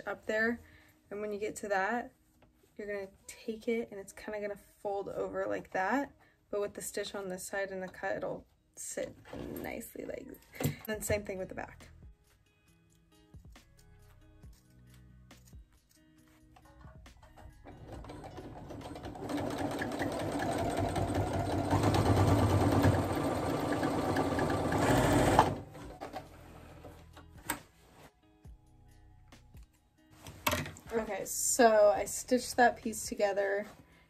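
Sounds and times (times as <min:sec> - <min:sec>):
electric sewing machine stitching: 0:17.6 - 0:26.3.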